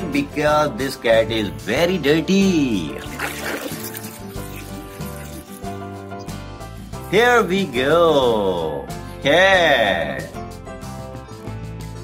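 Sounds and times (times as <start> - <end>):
background music with held tones: 0.0 - 12.0
water splashing in a tub: 2.9 - 4.7.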